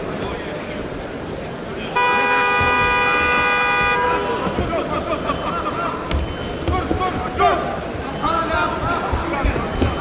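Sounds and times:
horn blast: 2.0 - 4.4.

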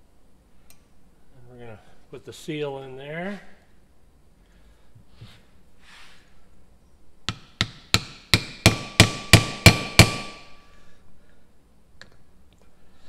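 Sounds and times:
hammer striking steel driver: 7.3 - 10.5.

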